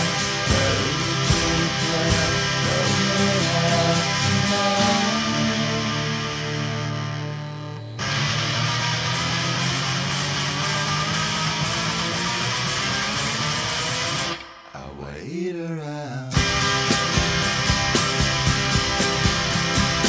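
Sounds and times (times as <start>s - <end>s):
rock band playing: 0.0s - 14.7s, 16.4s - 20.0s.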